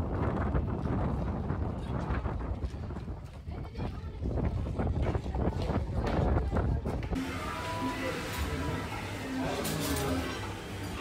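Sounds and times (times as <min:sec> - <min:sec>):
wind buffeting microphone: 0:00.0 - 0:07.2
faint voices: 0:01.7 - 0:11.0.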